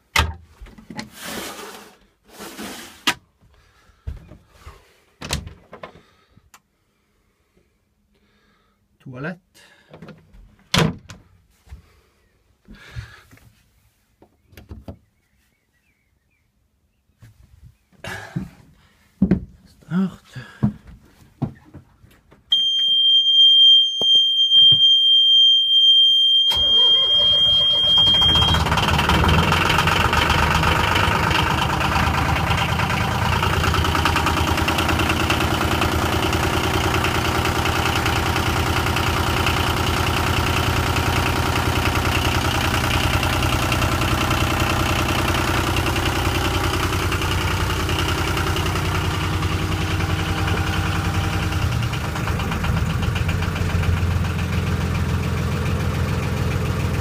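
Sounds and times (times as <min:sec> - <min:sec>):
diesel engine starting and idling: 0:25.8 - 0:57.0.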